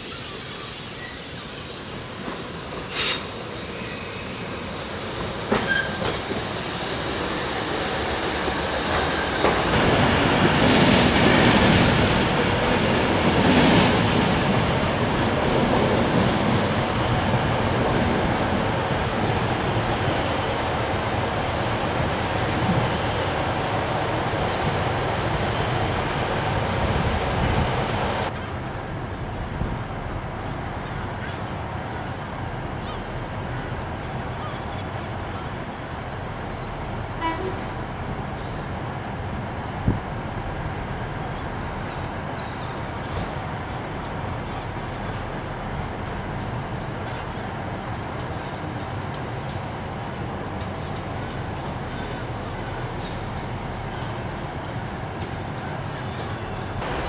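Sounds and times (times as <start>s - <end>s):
train wheels squealing: 0.0s - 1.8s, 2.9s - 4.7s, 5.5s - 7.0s
train wheels rumbling on rails: 0.0s - 57.0s.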